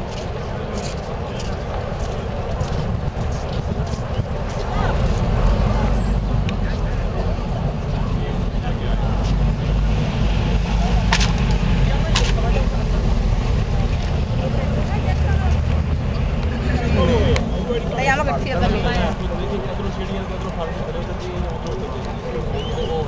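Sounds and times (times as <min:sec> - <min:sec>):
crowd chatter: 0:00.0 - 0:23.0
vehicle engines rumbling: 0:00.0 - 0:23.0.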